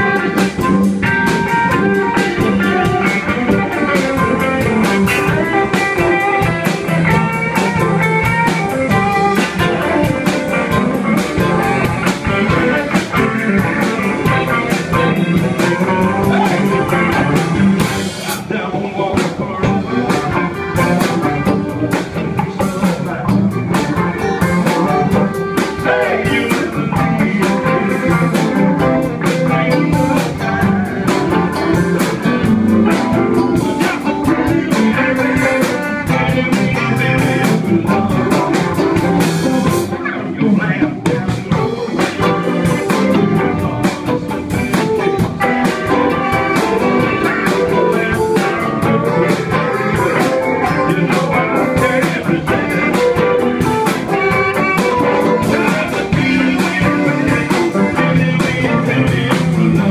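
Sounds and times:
drum kit: 0:00.0 - 0:59.9
electric guitars: 0:00.0 - 0:59.9.

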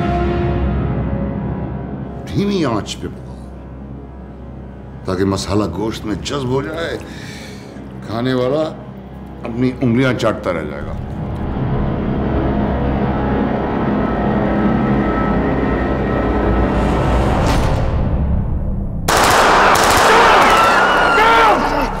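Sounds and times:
dramatic trailer music: 0:00.0 - 0:22.0
rapid automatic gunfire: 0:19.1 - 0:20.8.

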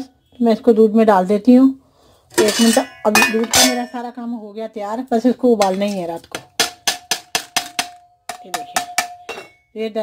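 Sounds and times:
steel bowl clinking on metal pot: 0:02.4 - 0:04.1, 0:05.6 - 0:09.7.

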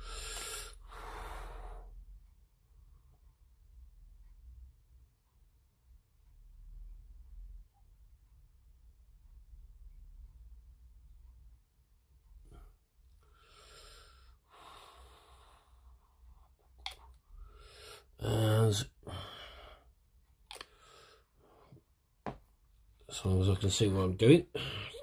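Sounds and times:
man mumbling: 0:18.2 - 0:19.1.

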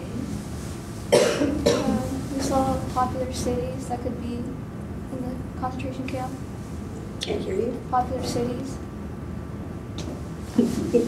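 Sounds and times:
woman coughing: 0:01.1 - 0:02.1.

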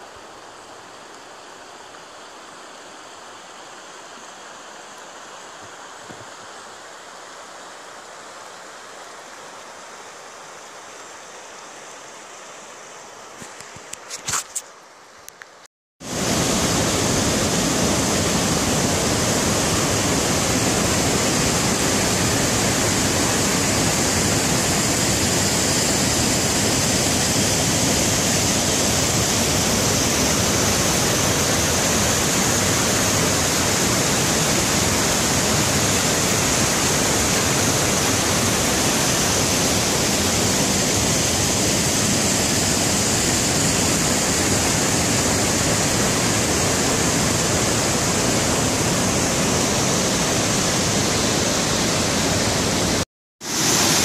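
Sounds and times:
rushing whitewater: 0:16.0 - 0:54.0.

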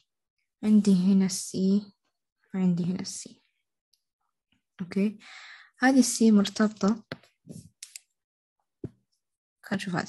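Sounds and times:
woman speaking: 0:00.6 - 0:03.4, 0:04.8 - 0:05.2, 0:05.8 - 0:07.1, 0:09.6 - 0:10.0.

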